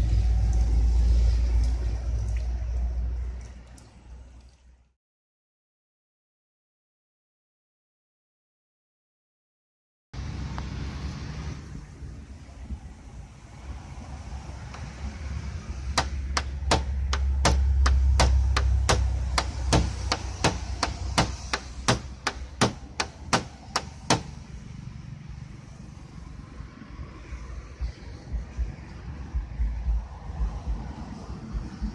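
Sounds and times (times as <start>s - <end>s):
wind rumble on microphone: 10.2s - 16.0s, 24.5s - 31.9s
tool tip scratching painted panel: 16.0s - 24.3s.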